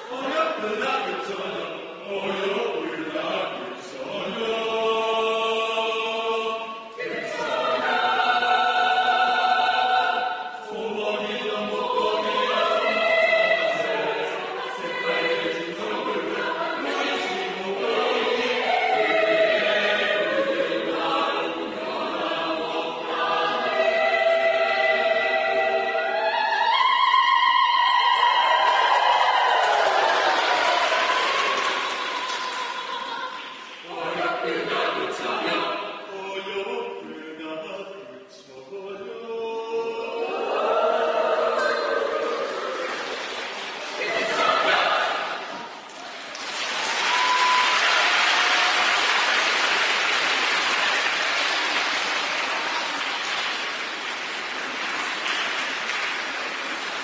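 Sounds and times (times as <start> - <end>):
audience applauding: 28.2 - 33.8, 42.5 - 57.0
people clapping rapidly: 28.4 - 33.9, 42.5 - 57.0.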